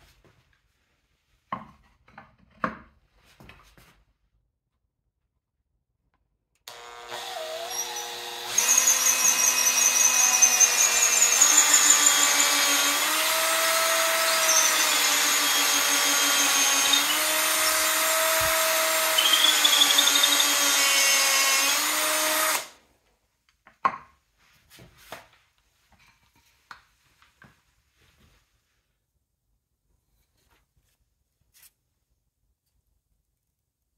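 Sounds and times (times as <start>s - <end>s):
cordless drill boring into wood: 6.7s - 22.8s.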